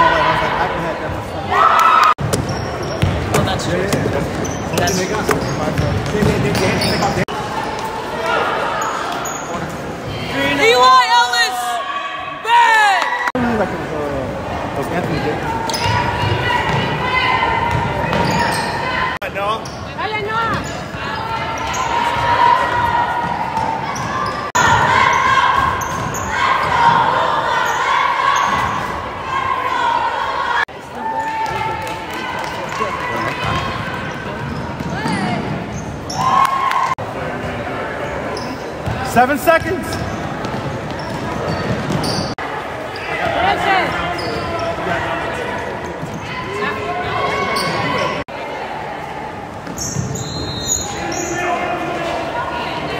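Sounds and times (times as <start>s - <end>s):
players' voices: 0.0s - 52.9s
sneakers squeaking: 2.2s - 11.5s, 15.0s - 48.2s, 49.4s - 52.9s.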